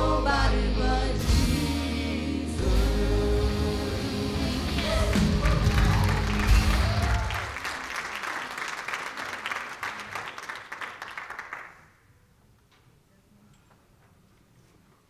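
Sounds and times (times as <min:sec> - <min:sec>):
congregation applause: 0:04.3 - 0:12.1.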